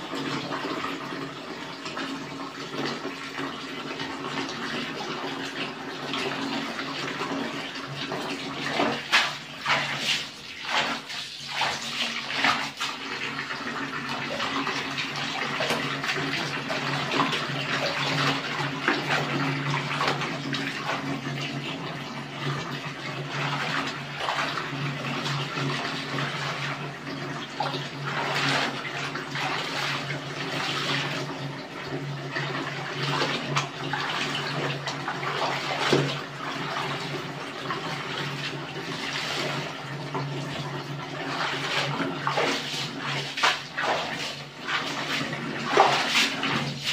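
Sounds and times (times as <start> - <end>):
clothes scrubbed in soapy water: 0.0 - 46.9
water splashes: 1.9 - 46.9.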